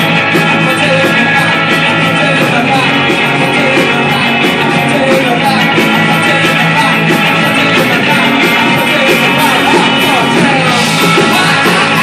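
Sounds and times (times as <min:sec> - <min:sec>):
bass guitar: 0:00.0 - 0:12.0
distorted electric guitar: 0:00.0 - 0:12.0
drums with cymbal beat: 0:00.0 - 0:12.0
man singing into a microphone: 0:00.0 - 0:12.0.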